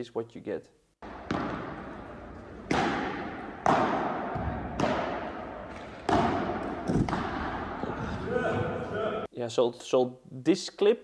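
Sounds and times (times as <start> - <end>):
ball bouncing on court: 1.0 - 7.8
ball struck by rackets: 1.0 - 7.8.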